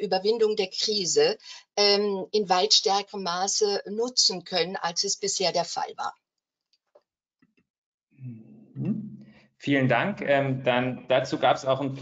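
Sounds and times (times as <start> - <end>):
voice speaking: 8.2 - 12.0.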